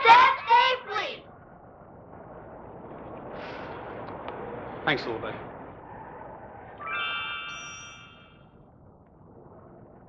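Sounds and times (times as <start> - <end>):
soft tape hiss: 7.5 - 10.0.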